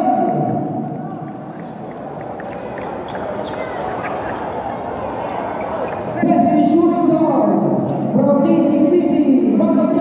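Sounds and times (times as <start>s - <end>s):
crowd hubbub: 0.9s - 6.3s.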